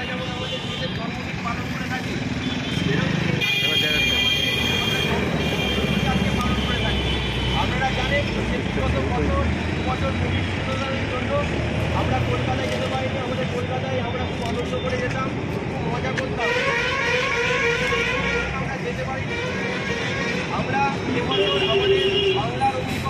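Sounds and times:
road traffic: 0.0 - 23.0.

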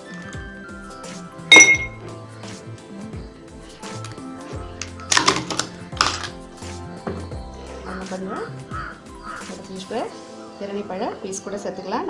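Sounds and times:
ice clinking in glass: 1.5 - 2.0.

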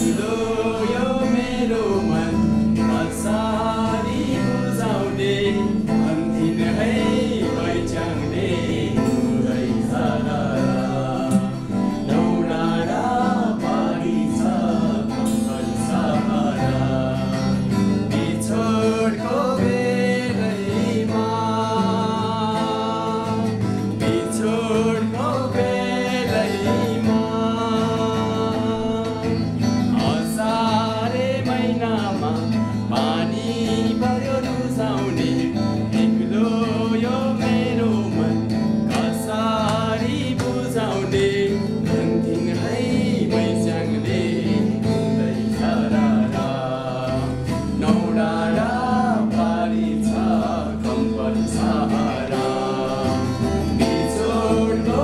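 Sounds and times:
men singing together: 0.0 - 55.0
strummed acoustic guitars: 0.0 - 55.0.

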